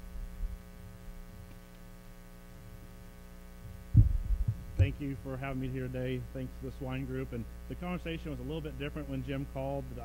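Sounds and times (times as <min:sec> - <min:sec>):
mains hum: 0:00.0 - 0:10.0
microphone handling thumps: 0:03.6 - 0:05.3
man speaking: 0:04.8 - 0:10.0.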